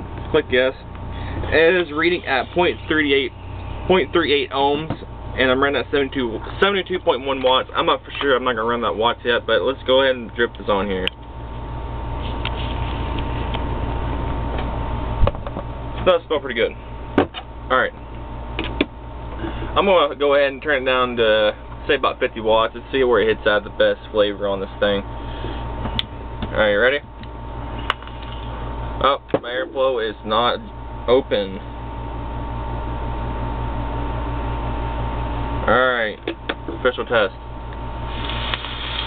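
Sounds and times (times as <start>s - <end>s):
faint high whine: 0.0s - 39.0s
low background hum: 0.0s - 39.0s.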